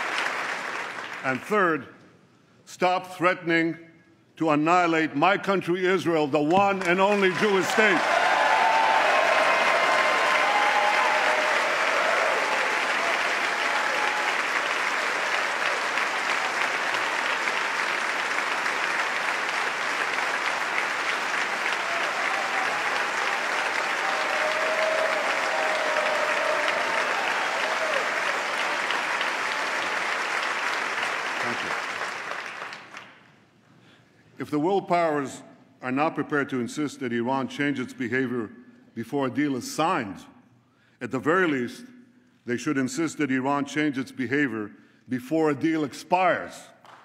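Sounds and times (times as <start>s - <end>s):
large audience applauding: 0.0s - 1.4s, 6.8s - 33.3s.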